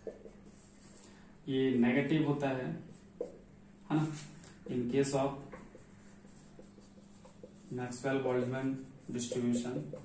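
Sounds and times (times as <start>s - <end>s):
marker scratching on whiteboard: 0.0s - 1.2s, 2.8s - 3.4s, 4.0s - 10.0s
low steady hum: 0.0s - 10.0s
man speaking: 3.9s - 5.6s, 7.7s - 10.0s.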